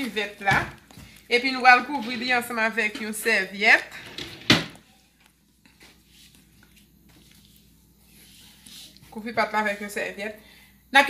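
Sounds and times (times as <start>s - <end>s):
faint handling sounds: 4.8s - 9.8s.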